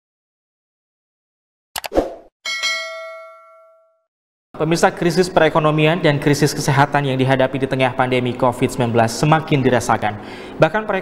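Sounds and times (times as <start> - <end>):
notification bell ding: 2.5 - 4.1.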